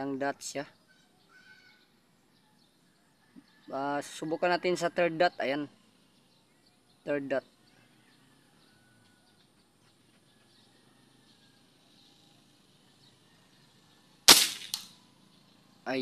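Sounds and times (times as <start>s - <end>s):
air rifle shot crack: 14.3s - 14.9s.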